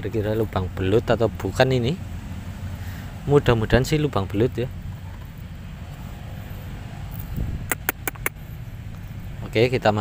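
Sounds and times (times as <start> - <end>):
distant traffic rumble: 0.0 - 10.0
sharp clicks: 7.7 - 8.4.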